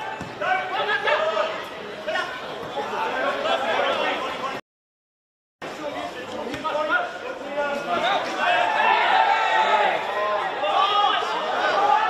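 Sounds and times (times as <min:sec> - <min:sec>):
voices calling and chattering: 0:00.0 - 0:04.6, 0:05.6 - 0:12.0.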